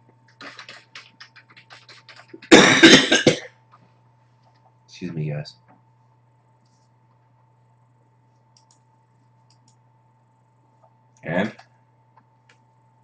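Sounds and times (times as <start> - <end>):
computer keyboard typing: 0.3 - 2.5, 8.5 - 9.8
loud cough: 2.5 - 3.5.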